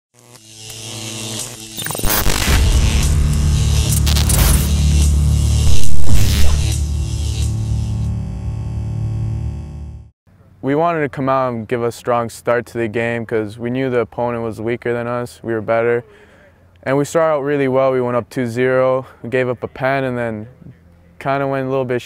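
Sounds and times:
distorted logo sting music: 0:01.3 - 0:09.6.

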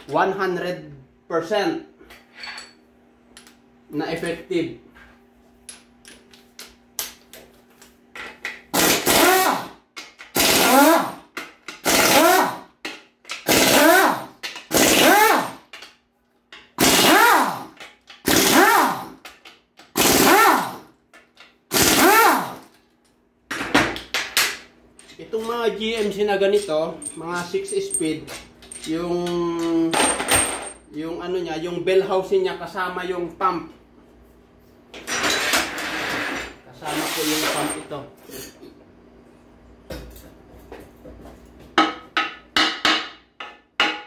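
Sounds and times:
pneumatic wrench bursts: 0:08.7 - 0:11.2, 0:11.8 - 0:12.7, 0:13.4 - 0:15.7, 0:16.8 - 0:19.2, 0:19.9 - 0:20.9, 0:21.7 - 0:22.7.

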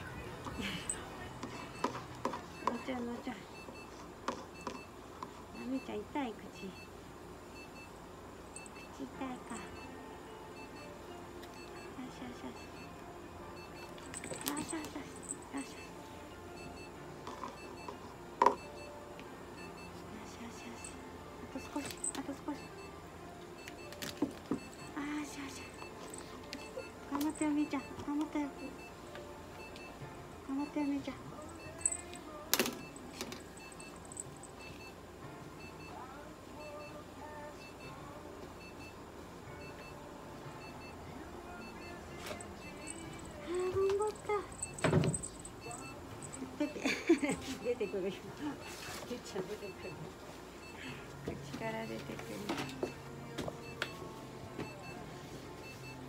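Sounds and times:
low background hum: 0:00.0 - 0:56.0.

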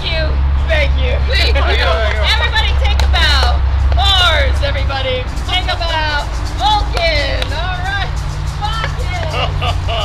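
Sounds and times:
people calling and whooping: 0:00.0 - 0:10.0
steady low rumble: 0:00.0 - 0:10.0.

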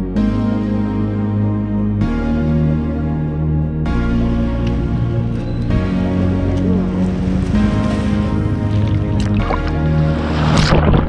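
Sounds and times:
instrumental music with held notes: 0:00.0 - 0:11.0.

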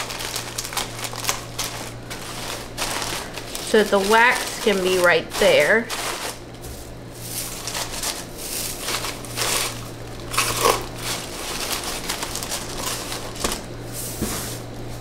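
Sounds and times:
paper shred rustling and crinkling: 0:00.0 - 0:15.0
steady low hum: 0:00.0 - 0:15.0.

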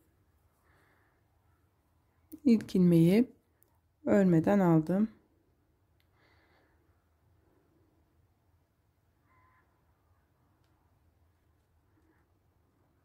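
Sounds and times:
faint soft sounds: 0:00.0 - 0:13.0.

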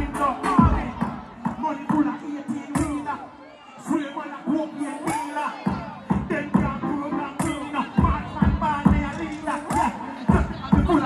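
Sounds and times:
amplified voice chanting: 0:00.0 - 0:11.0
crowd noise: 0:00.0 - 0:11.0
music through loudspeakers: 0:00.0 - 0:11.0.

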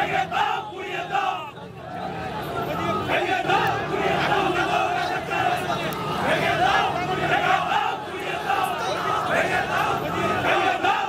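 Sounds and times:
crowd shouting slogans: 0:00.0 - 0:11.0.

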